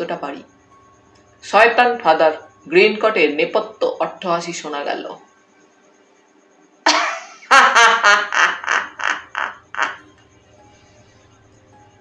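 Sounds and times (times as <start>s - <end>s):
theatrical roaring laugh: 6.9s - 10.0s.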